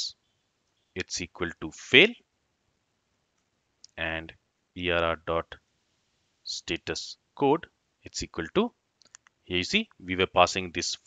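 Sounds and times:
person speaking: 0:01.0 - 0:02.2, 0:03.9 - 0:05.6, 0:06.5 - 0:08.7, 0:09.5 - 0:11.0.

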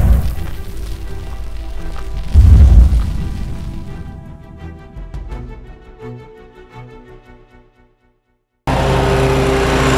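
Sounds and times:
deep rumbling boom: 0:00.0 - 0:00.9, 0:02.2 - 0:04.1.

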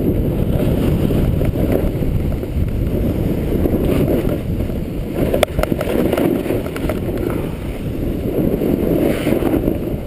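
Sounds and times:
skis scraping over snow: 0:00.0 - 0:10.0
wind buffeting microphone: 0:00.0 - 0:10.0.

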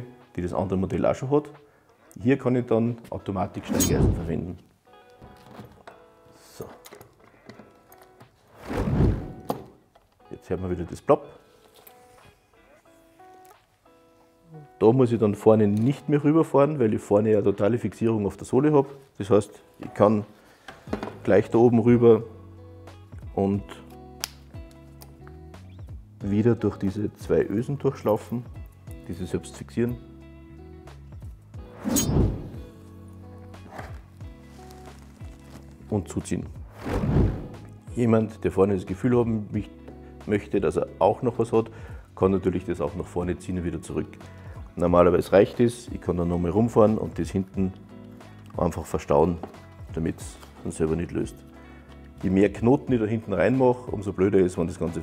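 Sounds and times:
background music: 0:00.0 - 0:55.0
strap rustling and knocking: 0:20.6 - 0:21.3.

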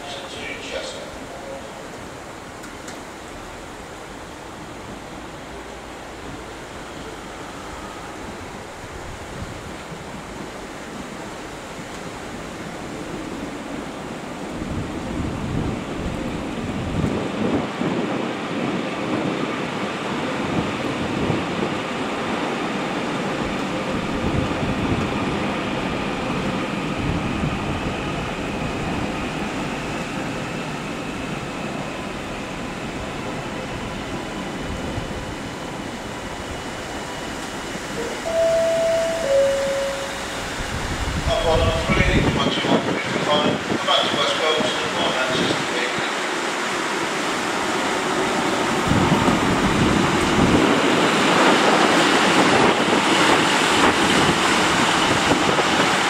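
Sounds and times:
train wheels rumbling on rails: 0:00.0 - 0:56.0
two-note tones: 0:38.0 - 0:40.6.

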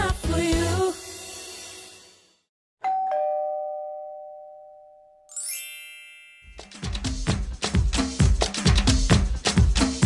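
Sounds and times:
two-tone doorbell chime: 0:02.8 - 0:06.9.

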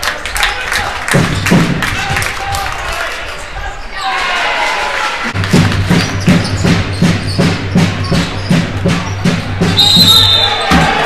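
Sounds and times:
basketball bouncing on wooden court: 0:05.4 - 0:11.0.

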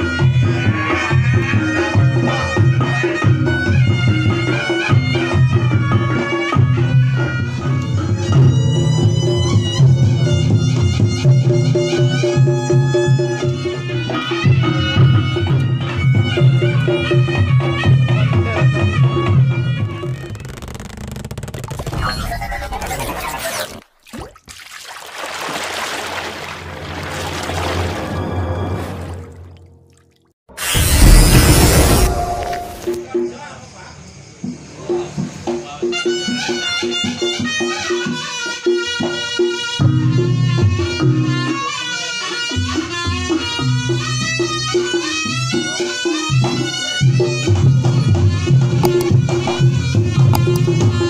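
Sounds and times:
electronic intro sound effects: 0:30.6 - 0:33.0
bamboo slit drums and drums beating: 0:45.3 - 0:51.0.

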